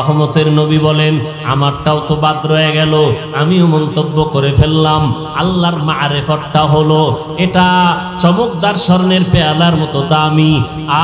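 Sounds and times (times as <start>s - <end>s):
man chanting a sermon: 0.0s - 11.0s.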